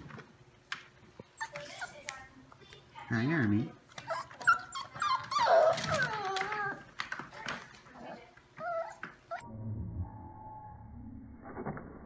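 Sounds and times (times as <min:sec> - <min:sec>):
puppies whimpering and yipping: 0:04.0 - 0:06.9, 0:08.6 - 0:09.4.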